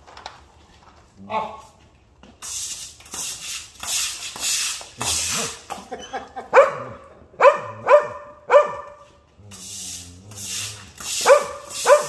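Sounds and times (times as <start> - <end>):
broom swishing water on concrete: 2.2 - 6.0, 8.9 - 12.0
dog barking: 6.5 - 9.1, 11.2 - 12.0
dog yipping: 6.5 - 9.1, 11.2 - 12.0.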